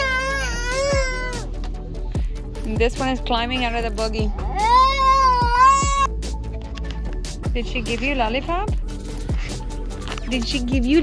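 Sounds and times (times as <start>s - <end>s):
young child whining cry: 0.0s - 1.5s, 4.3s - 6.1s
background music: 0.0s - 11.0s.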